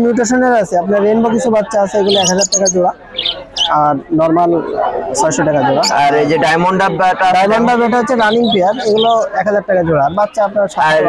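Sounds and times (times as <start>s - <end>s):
man's voice: 0.0s - 3.0s, 3.6s - 11.0s
budgerigars chirping: 1.6s - 4.0s, 8.2s - 9.3s.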